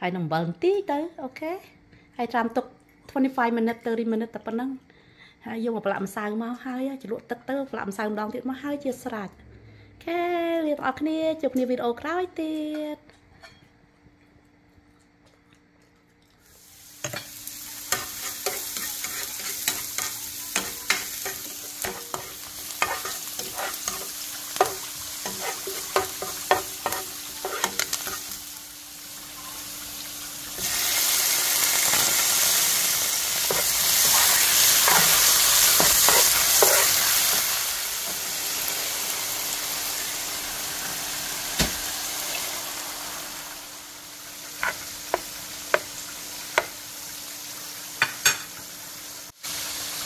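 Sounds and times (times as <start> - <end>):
chicken sizzling in hot pan: 16.4 - 50.0
garlic sizzling in oil: 16.4 - 50.0.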